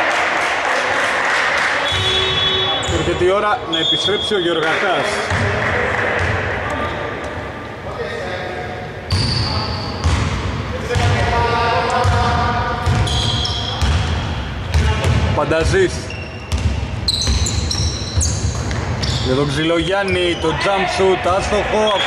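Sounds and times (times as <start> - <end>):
sneaker squeaks: 1.8 - 5.4, 9.1 - 10.3, 12.8 - 14.8, 15.7 - 20.9.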